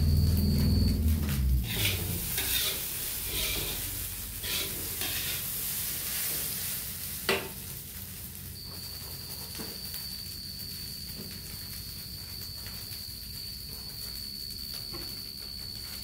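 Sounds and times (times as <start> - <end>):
rice sizzling in a wok: 0.0 - 16.0
spatula scraping a wok: 1.6 - 7.8.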